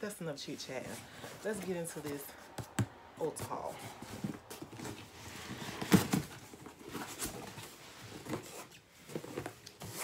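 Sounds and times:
cardboard box knocks and scrapes: 3.5s - 10.0s.

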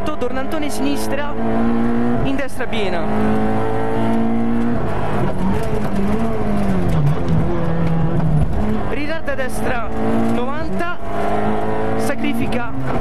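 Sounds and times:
rally car engine revving: 0.0s - 13.0s.

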